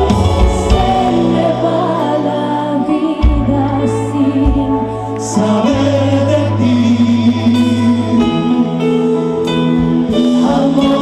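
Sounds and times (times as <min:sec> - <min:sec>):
acoustic guitars: 0:00.0 - 0:11.0.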